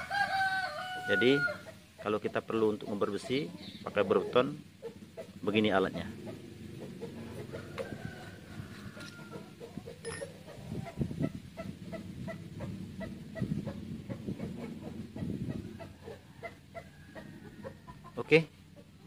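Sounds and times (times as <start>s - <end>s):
chicken clucking: 1.2s - 19.0s.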